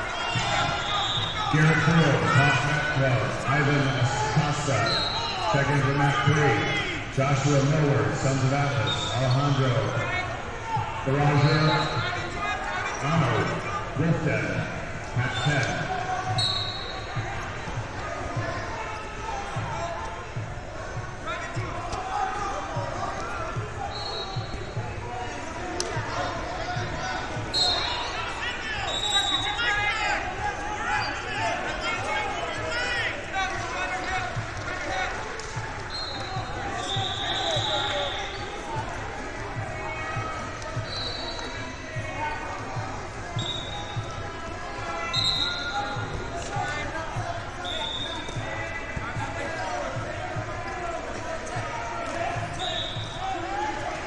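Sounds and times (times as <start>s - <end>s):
crowd shouting and talking: 0.0s - 54.0s
referee whistle blasts: 0.3s - 1.6s, 4.8s - 5.5s, 8.8s - 9.8s, 11.4s - 12.3s, 15.2s - 17.2s, 23.8s - 24.8s, 27.5s - 29.9s, 35.9s - 38.6s, 40.8s - 41.7s, 43.3s - 44.2s, 45.0s - 46.1s, 47.6s - 48.5s, 52.4s - 53.4s.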